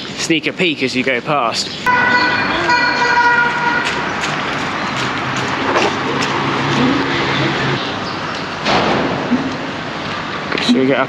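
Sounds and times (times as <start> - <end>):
traffic noise: 0.0 - 11.0
car horn held steadily: 1.9 - 3.9.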